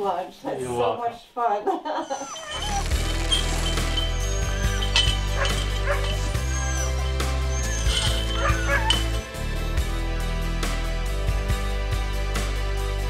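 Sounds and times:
huskies yipping and barking: 2.0 - 9.8.

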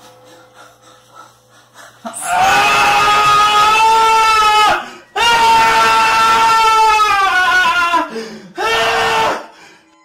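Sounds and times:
long high-pitched scream: 2.2 - 9.6.

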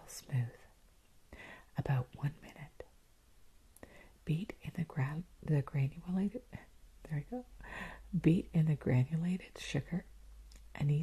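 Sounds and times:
woman whispering softly: 0.0 - 0.7, 1.4 - 2.9, 3.9 - 11.0.

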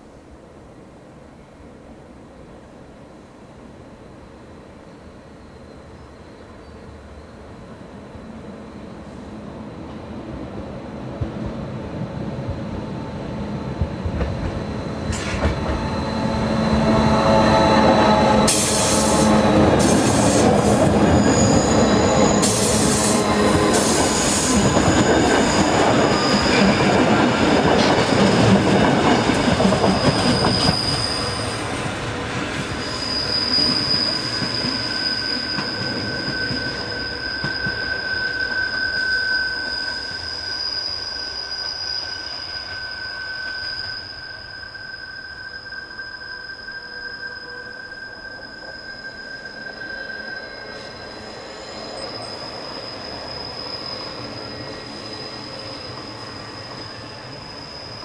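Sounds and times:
train wheels rumbling: 9.7 - 44.5
steel wheels squealing: 12.9 - 58.0.

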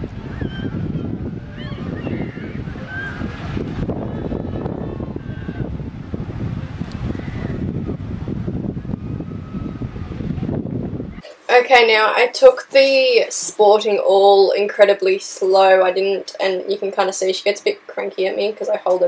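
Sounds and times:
wind buffeting microphone: 0.0 - 19.0
gliding bird calls: 1.5 - 3.3.

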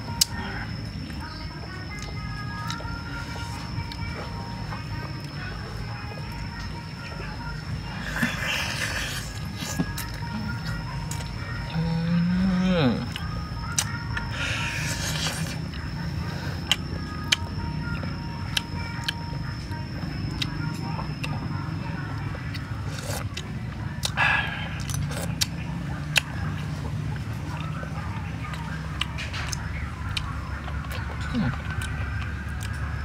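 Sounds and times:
slurping: 13.8 - 16.8.

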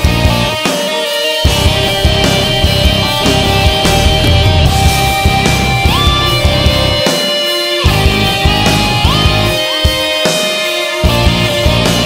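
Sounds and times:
instrumental rock music: 0.0 - 12.0.

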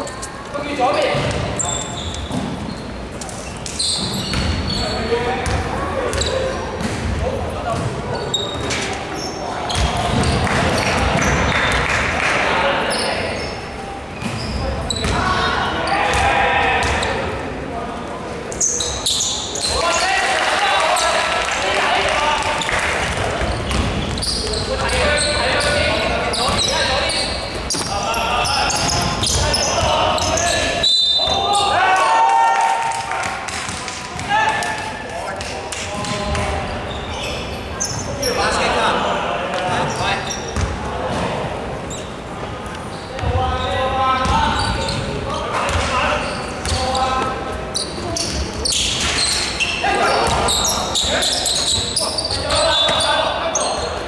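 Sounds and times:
players calling out: 18.6 - 35.3.

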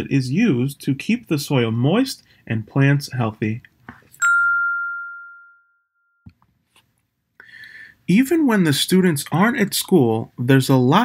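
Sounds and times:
bright chime ringing: 4.2 - 6.2.

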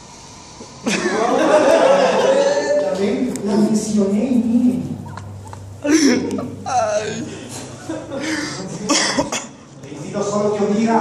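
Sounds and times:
person coughing: 5.8 - 7.5, 8.2 - 9.6.

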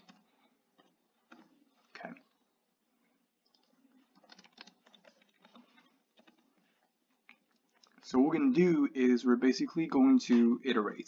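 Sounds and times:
computer keyboard typing: 0.0 - 1.6, 3.4 - 6.4.

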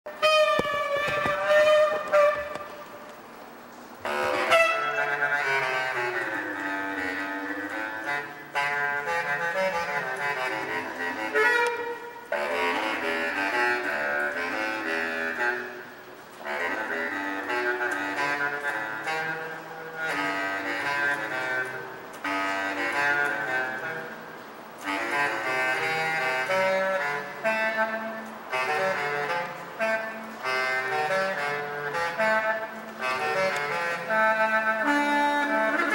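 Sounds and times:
bass clarinet playing jazzy melody: 0.1 - 35.9.

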